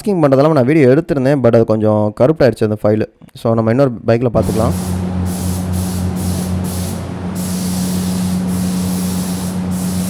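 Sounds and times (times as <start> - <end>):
spray gun hissing: 4.4 - 10.0
steady low hum: 4.4 - 10.0.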